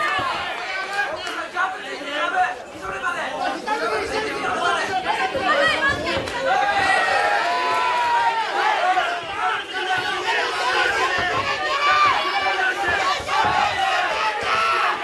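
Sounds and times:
crowd shouting in a hall: 0.0s - 15.0s.

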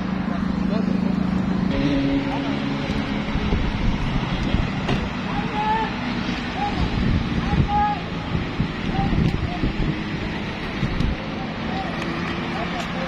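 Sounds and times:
faint voices: 0.0s - 13.0s
street noise: 0.0s - 13.0s
wind buffeting microphone: 3.3s - 5.5s, 6.8s - 11.2s.

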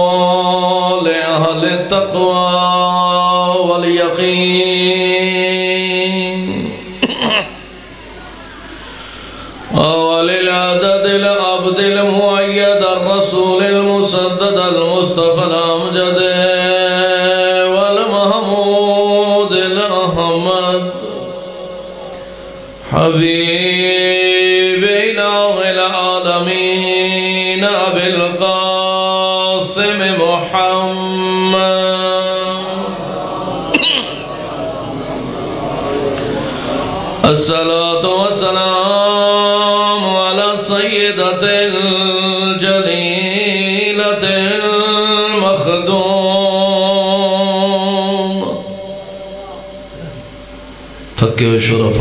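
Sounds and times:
man chanting into a microphone: 0.0s - 7.0s, 9.6s - 50.4s, 51.1s - 52.0s.

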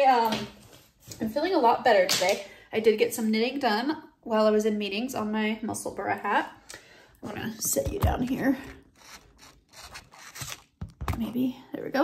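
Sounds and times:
phone rubbing and scraping: 8.3s - 10.7s.

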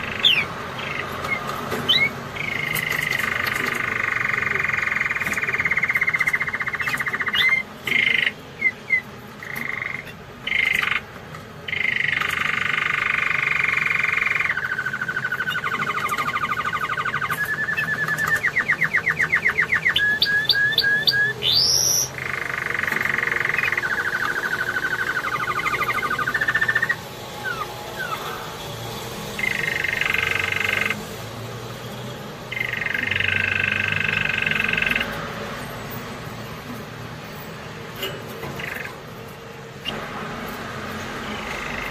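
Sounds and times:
canary singing: 0.0s - 41.9s.

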